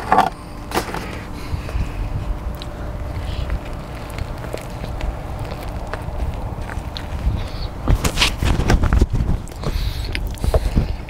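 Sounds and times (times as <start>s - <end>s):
low car rumble: 0.0s - 11.0s.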